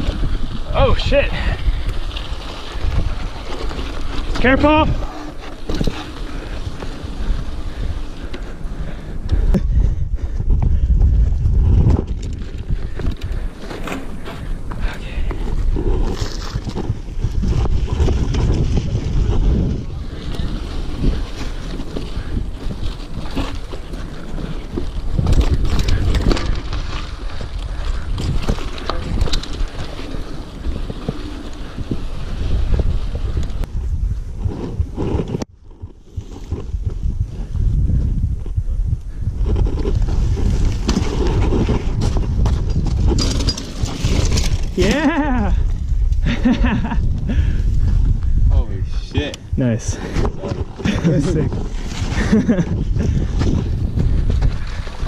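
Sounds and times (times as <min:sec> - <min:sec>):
tyres crunching on dirt: 0:00.0 - 0:09.3, 0:11.1 - 0:37.5
bike clattering over bumps: 0:00.0 - 0:48.4
wind buffeting microphone: 0:00.0 - 0:55.0.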